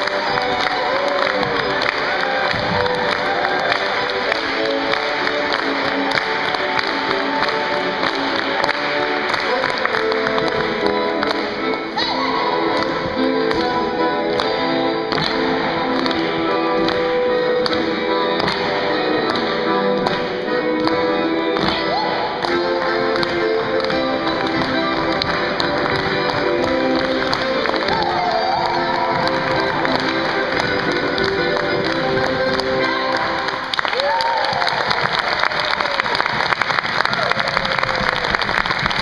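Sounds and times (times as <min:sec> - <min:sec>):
lively folk dance music: 0:00.0 - 0:39.0.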